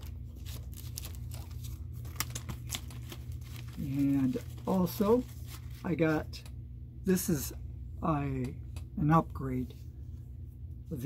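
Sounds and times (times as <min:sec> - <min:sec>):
paper sleeve rustling: 0:00.0 - 0:06.2.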